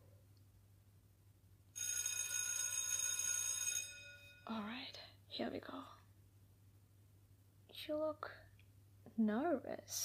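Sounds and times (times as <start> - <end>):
electric school bell ringing: 1.8 - 4.5.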